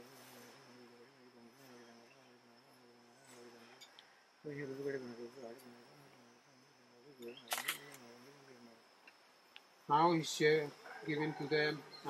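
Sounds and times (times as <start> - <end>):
high insect drone: 0.0 - 12.0
sharp clicks: 7.3 - 8.0.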